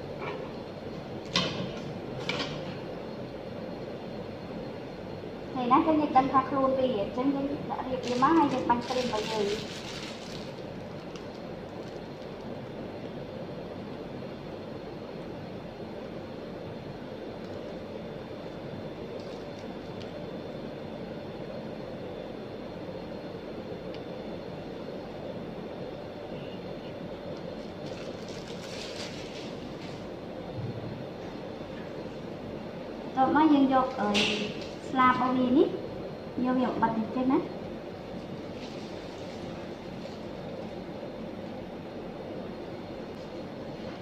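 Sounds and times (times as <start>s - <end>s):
mechanical equipment hum: 0.0s - 44.0s
plastic piping bag crinkling: 7.8s - 12.8s, 19.1s - 20.2s, 27.5s - 30.1s, 38.3s - 40.8s.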